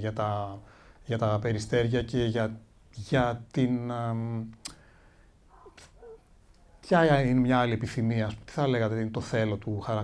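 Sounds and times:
man speaking into a microphone: 0.0s - 4.6s, 6.7s - 10.0s
short sharp clicks: 5.7s - 6.0s.

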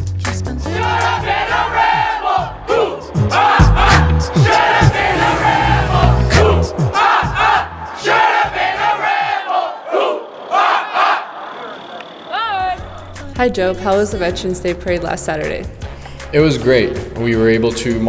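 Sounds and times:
crowd noise: 0.7s - 14.1s.

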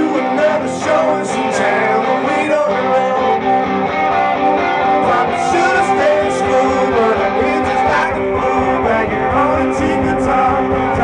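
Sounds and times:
drums: 0.0s - 11.0s
strummed electric guitar: 0.0s - 11.0s.

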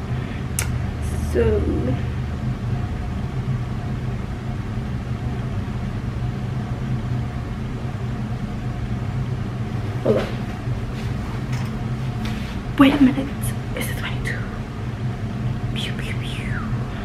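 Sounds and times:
low mechanical hum: 0.0s - 17.0s.

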